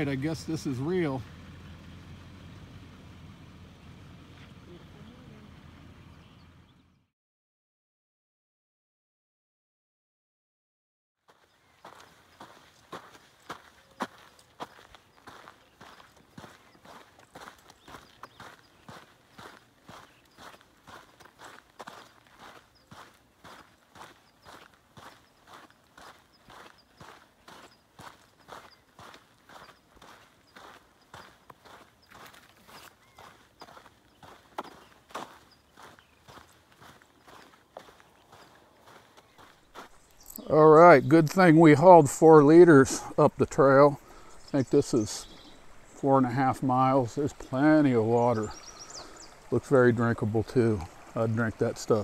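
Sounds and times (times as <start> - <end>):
footsteps on dirt trail: 11.3 - 52.0.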